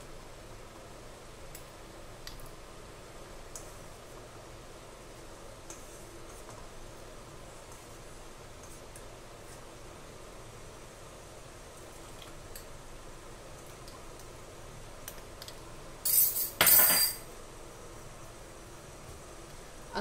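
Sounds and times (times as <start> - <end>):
faint steady background noise: 0.0 - 20.0
metal spoon clinking on glass bowl: 16.0 - 17.2.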